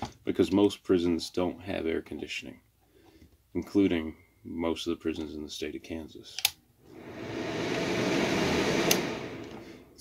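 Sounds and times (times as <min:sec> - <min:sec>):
electric fan whirring: 0:06.8 - 0:10.0.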